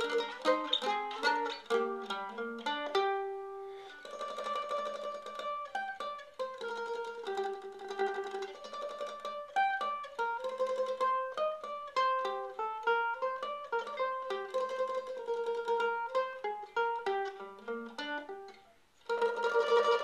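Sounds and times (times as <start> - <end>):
mandolin picked melody: 0.0 - 20.0.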